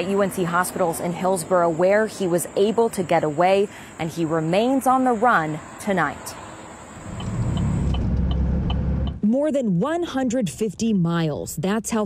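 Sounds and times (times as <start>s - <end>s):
engine and road rumble: 0.0s - 9.4s.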